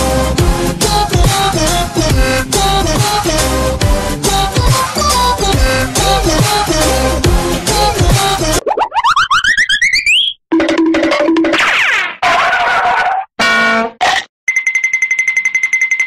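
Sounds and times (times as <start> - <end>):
electronic music: 0.0 - 8.7
pitched blips and pops: 8.6 - 11.9.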